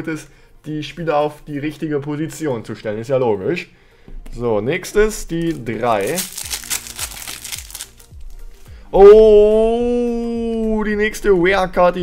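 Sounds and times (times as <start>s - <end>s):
background music with low beat: 0.0s - 12.0s
foil wrapper crinkling: 5.5s - 8.2s.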